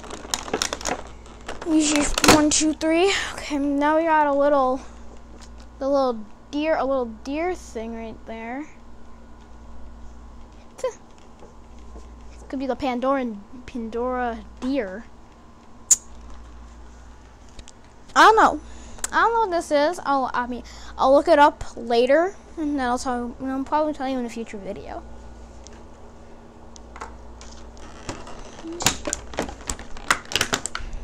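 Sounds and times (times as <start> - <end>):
plastic packaging crackling and clicking: 0.0 - 2.8, 26.8 - 31.0
faint low hum: 0.0 - 31.0
sharp high-pitched click: 15.9 - 16.1.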